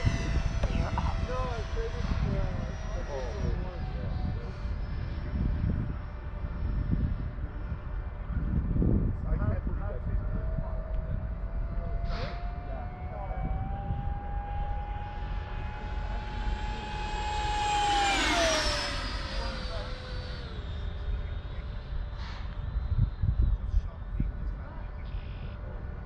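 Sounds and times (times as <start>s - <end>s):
model jet fan whine flying past: 0.0s - 26.0s
wind rumble on microphone: 0.0s - 26.0s.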